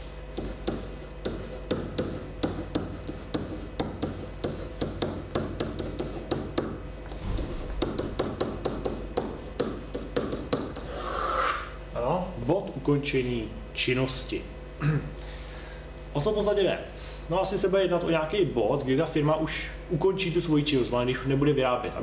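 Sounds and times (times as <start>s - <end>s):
marker writing on whiteboard: 0.3s - 11.6s.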